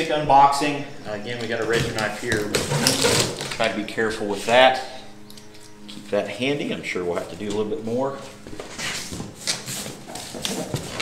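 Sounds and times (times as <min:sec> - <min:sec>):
cardboard crackles: 0:01.4 - 0:03.7.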